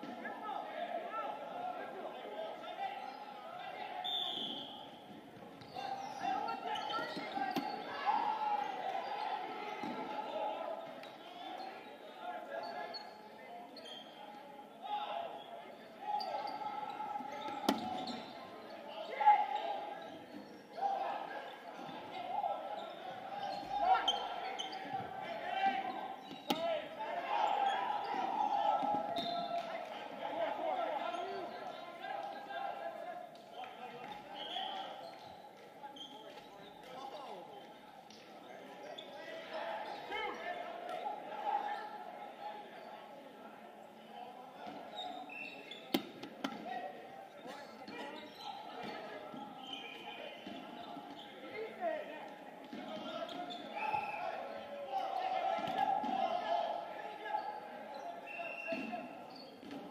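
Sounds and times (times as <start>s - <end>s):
players calling out and chattering: 0.0s - 59.9s.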